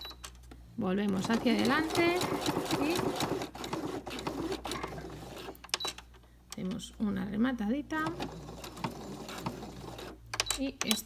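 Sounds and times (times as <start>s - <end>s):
sewing machine stitching: 1.1s - 5.6s.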